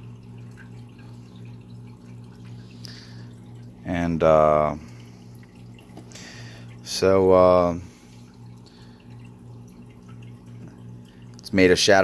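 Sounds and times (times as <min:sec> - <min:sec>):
steady low hum: 0:00.0 - 0:12.0
water trickling and dripping: 0:00.0 - 0:12.0.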